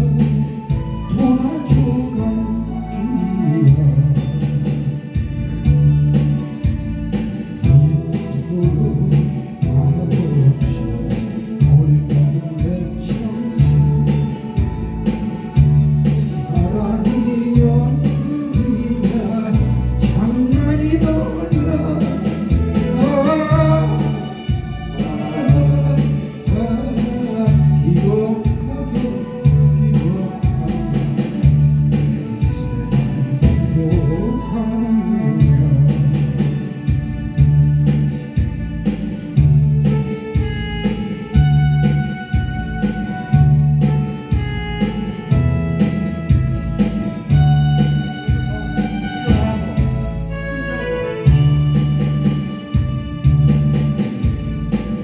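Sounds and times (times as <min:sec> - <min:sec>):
man singing into microphone: 0:00.0 - 0:05.2, 0:07.6 - 0:36.9, 0:47.0 - 0:51.6
karaoke backing track: 0:00.0 - 0:55.0
pop song with beat and bass: 0:00.0 - 0:55.0.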